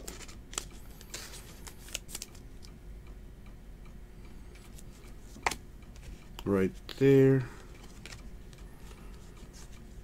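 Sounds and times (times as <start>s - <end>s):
light rustles of cards: 0.0s - 2.4s, 4.6s - 10.0s.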